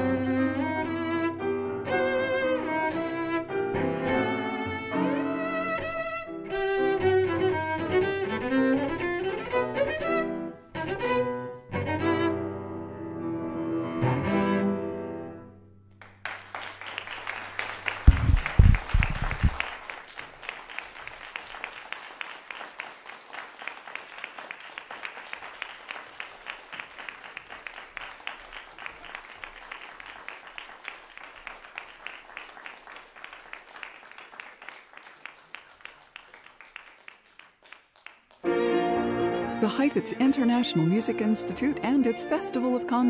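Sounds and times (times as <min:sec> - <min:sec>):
audience applauding: 0:16.0 - 0:38.6
heavy low thumps: 0:18.1 - 0:19.6.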